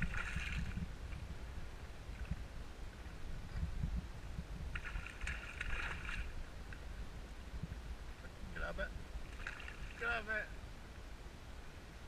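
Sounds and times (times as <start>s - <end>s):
water splashing: 0.0s - 0.9s, 4.7s - 6.8s, 9.2s - 10.4s.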